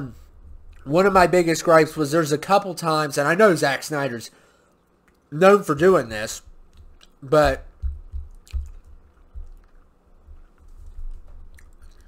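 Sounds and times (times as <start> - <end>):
person chewing food: 6.6 - 12.0.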